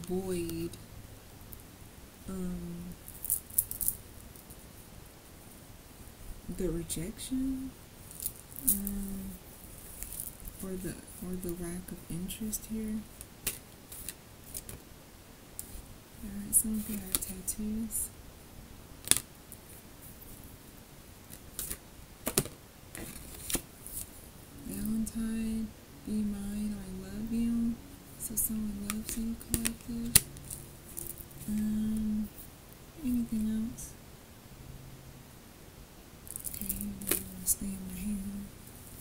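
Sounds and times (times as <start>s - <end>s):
beaded bracelets clicking: 3.1s - 4.0s.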